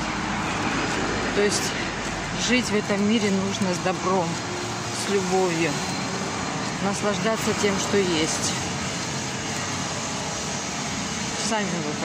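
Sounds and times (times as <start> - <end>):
road traffic rushing: 0.0 - 12.0.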